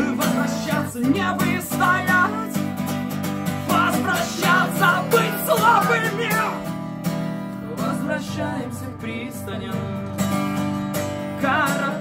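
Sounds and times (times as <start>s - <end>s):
person singing: 0.0s - 2.8s, 3.5s - 6.7s, 11.3s - 12.0s
acoustic guitar strumming: 0.0s - 12.0s.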